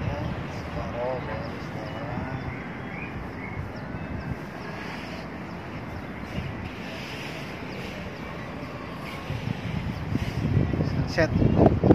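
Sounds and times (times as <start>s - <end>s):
distant traffic: 0.0s - 11.9s
wind on microphone: 0.0s - 11.9s.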